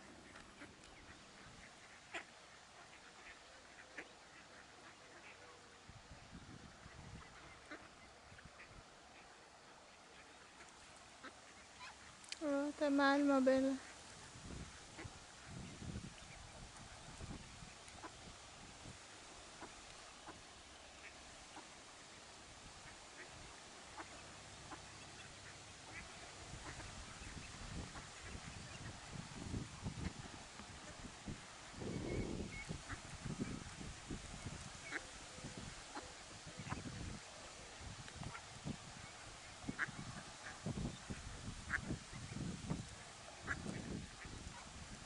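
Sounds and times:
ducklings peeping: 0:00.0 - 0:05.5, 0:06.2 - 0:09.4, 0:21.0 - 0:31.0, 0:31.6 - 0:37.2, 0:38.2 - 0:44.7
ducks calling: 0:00.0 - 0:05.6, 0:19.1 - 0:31.0
background hiss: 0:00.0 - 0:45.0
person speaking: 0:12.4 - 0:13.8.

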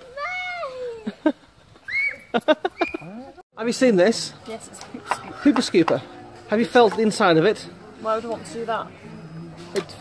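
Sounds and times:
girls laughing: 0:00.9 - 0:03.4
girl squealing: 0:01.9 - 0:02.3.

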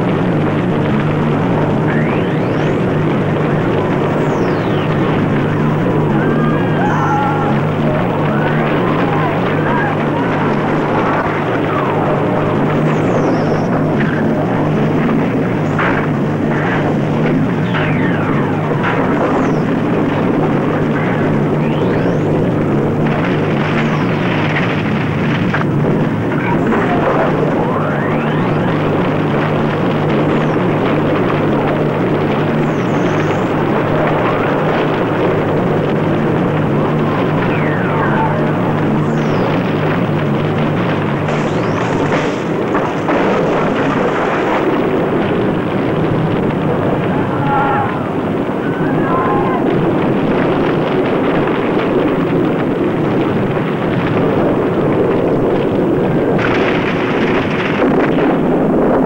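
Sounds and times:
loud steady roar: 0:00.0 - 0:59.0
low drone: 0:00.0 - 0:59.0.

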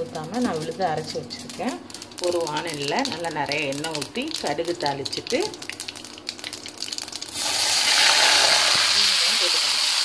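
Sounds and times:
seeds crackling in hot oil: 0:00.0 - 0:10.0
paste sizzling in oil: 0:02.0 - 0:10.0.

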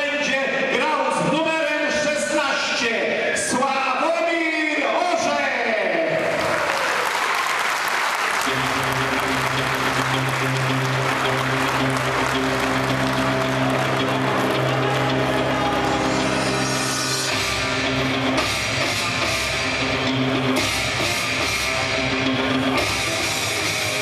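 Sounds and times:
crowd applauding: 0:06.2 - 0:19.5
rock music with drums: 0:08.5 - 0:24.0.

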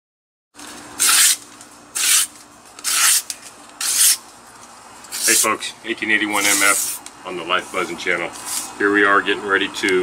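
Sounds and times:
newspaper tearing: 0:02.0 - 0:04.2, 0:06.4 - 0:07.0.

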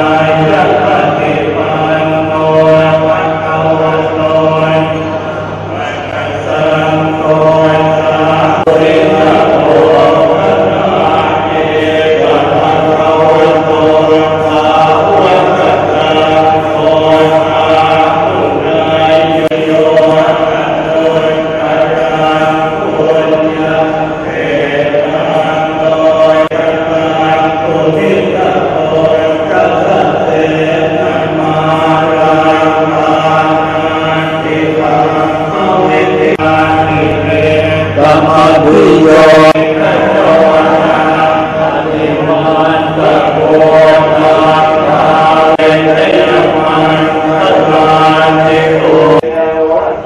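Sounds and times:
monks chanting in unison: 0:00.0 - 0:50.0.

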